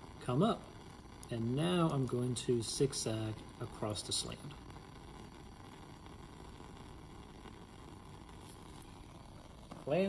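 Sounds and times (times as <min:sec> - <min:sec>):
burner flame rumble and hiss: 0:00.0 - 0:10.0.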